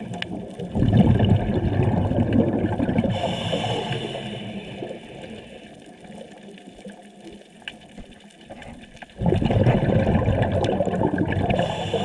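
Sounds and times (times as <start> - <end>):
regulator bubbles rushing: 0.0 - 3.3, 9.1 - 12.0
faint water wash: 0.0 - 12.0.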